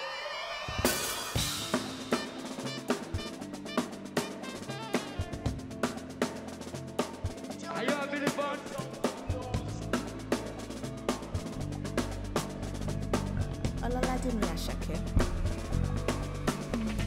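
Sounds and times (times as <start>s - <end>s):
alto saxophone: 0.0s - 5.8s
drums beat: 0.7s - 17.0s.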